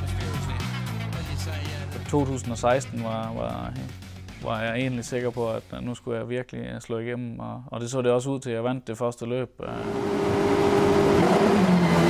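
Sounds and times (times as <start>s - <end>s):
race car engine running hard: 9.8s - 12.0s.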